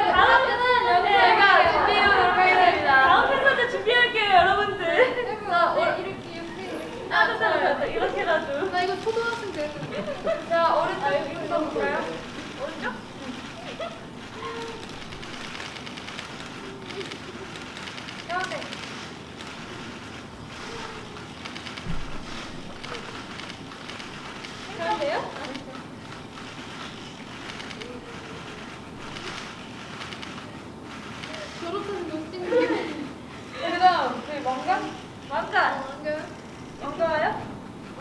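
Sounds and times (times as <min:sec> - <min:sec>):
crowd murmur in a hall: 0:00.0 - 0:38.0
short low thump: 0:21.9 - 0:22.4.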